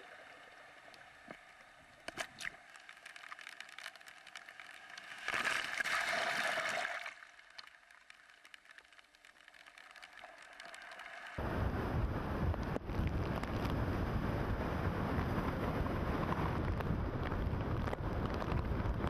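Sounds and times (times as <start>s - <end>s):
storm surf on rocky shore: 11.4s - 19.0s
strong wind buffeting microphone: 11.4s - 19.0s.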